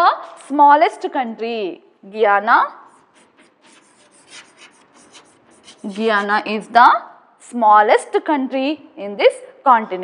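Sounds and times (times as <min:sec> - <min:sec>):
chalk scratching on chalkboard: 0:00.0 - 0:01.0, 0:02.8 - 0:06.8.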